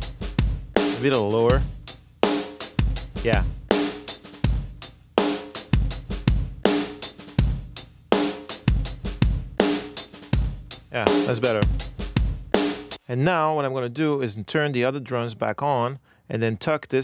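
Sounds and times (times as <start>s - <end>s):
compressed drum kit beat: 0.0s - 13.0s.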